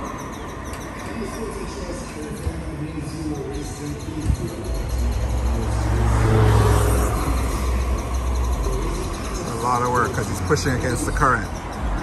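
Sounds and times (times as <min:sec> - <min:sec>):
vehicle passing rumble: 0:04.2 - 0:12.0.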